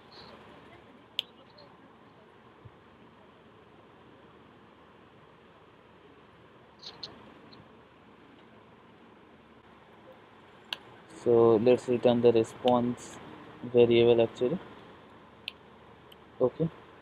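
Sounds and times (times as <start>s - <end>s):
faint hiss: 0.0s - 17.0s.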